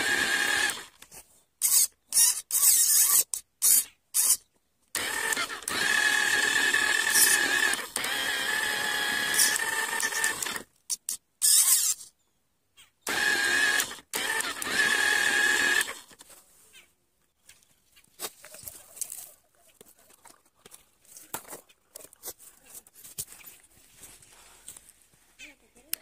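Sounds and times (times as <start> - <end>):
electric motor whining: 0.0 - 0.9, 5.0 - 10.7, 13.1 - 16.1.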